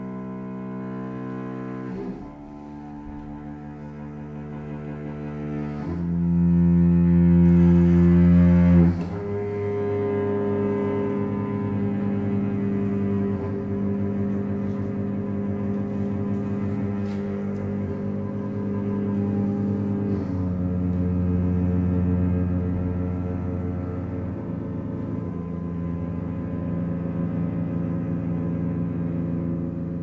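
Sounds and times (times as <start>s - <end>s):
low bowed strings chamber music: 0.0s - 30.0s.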